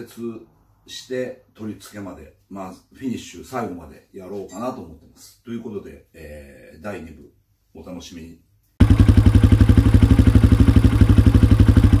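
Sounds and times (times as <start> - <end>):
motorcycle engine idling: 8.8 - 12.0.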